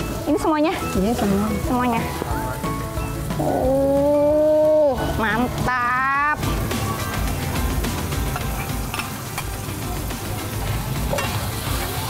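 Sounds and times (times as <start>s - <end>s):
spice paste sizzling in a wok: 0.0s - 12.0s
metal ladle clicking on pan: 11.1s - 11.5s.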